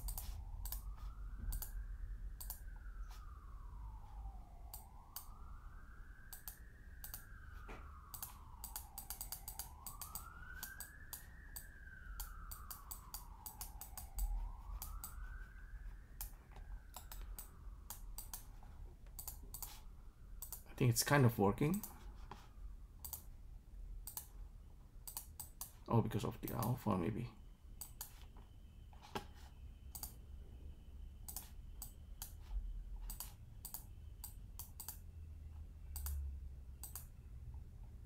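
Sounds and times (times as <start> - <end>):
emergency siren wailing: 0.0 - 23.3, 25.1 - 38.0
mouse and keyboard clicks: 33.0 - 35.0.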